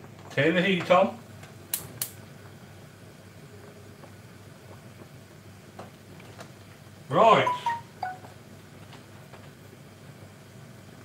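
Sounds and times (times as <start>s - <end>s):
faint steady background noise: 0.0s - 11.0s
gas hob spark igniter clicking: 1.7s - 2.2s.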